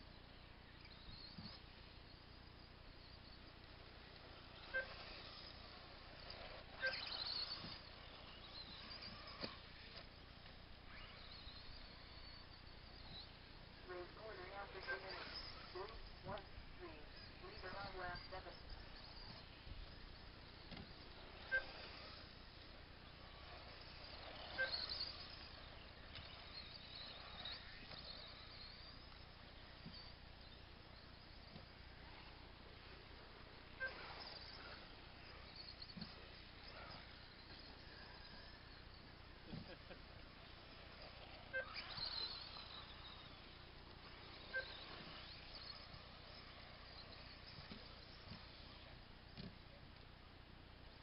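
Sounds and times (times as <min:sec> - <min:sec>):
toy car motors whining: 0:00.0 - 0:51.0.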